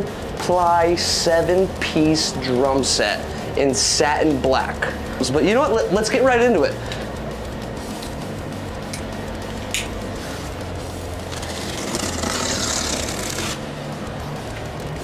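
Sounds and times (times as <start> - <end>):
quiet background music: 0.0 - 15.0
knife slicing packing tape: 11.3 - 13.6.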